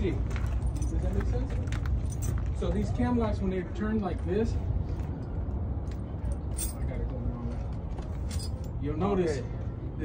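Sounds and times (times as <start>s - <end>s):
tire chain clinking: 0.0s - 3.1s, 4.9s - 9.3s.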